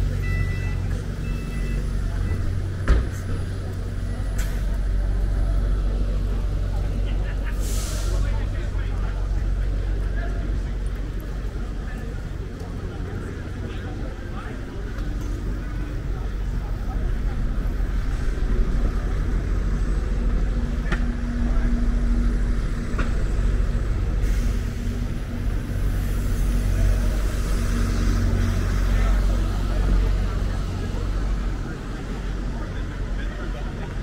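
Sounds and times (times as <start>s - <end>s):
low rumble of road traffic: 0.0s - 34.0s
passers-by talking: 0.0s - 34.0s.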